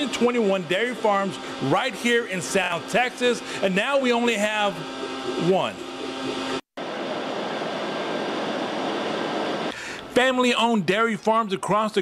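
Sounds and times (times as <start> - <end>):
milking machinery running: 0.0 - 10.0
ventilation fans running: 0.0 - 11.0.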